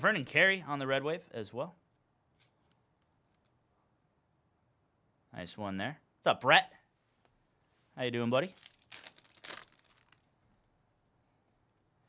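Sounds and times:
foil crackling: 8.4 - 10.3
foil wrapper tearing: 8.4 - 10.3.

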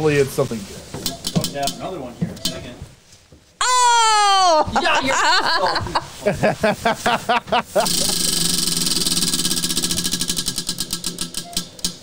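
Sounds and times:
prize wheel ticking: 7.8 - 12.0.

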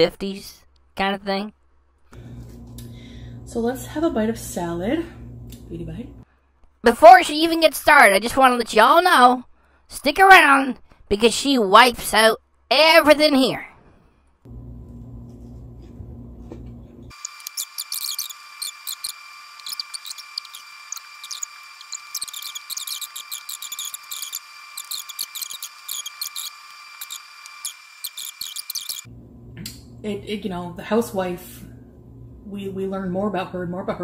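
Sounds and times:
low hum: 14.5 - 30.4
high electronic whine: 17.1 - 29.1.

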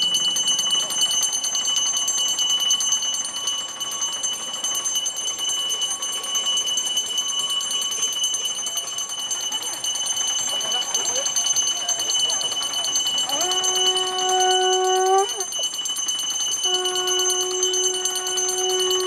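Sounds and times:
small hand bell ringing rapidly: 0.0 - 19.0.

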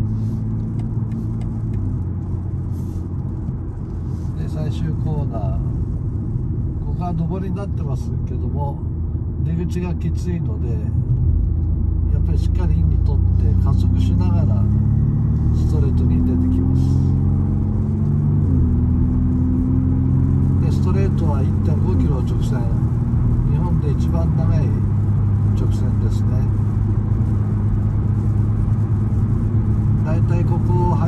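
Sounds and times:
car engine accelerating hard: 10.8 - 31.0.

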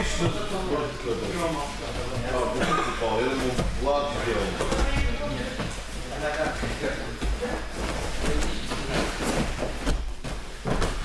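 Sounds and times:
body thumping on gym mats: 3.4 - 6.5, 7.3 - 11.0.

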